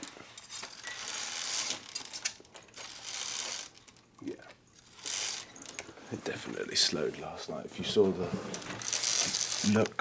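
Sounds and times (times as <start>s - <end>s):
curtain runners sliding on rail: 0.0s - 3.8s, 4.8s - 6.3s, 7.8s - 9.9s.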